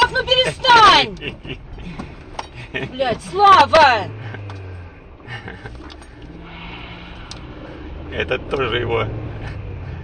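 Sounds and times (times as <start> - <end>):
car engine and road hum: 0.0 - 10.0.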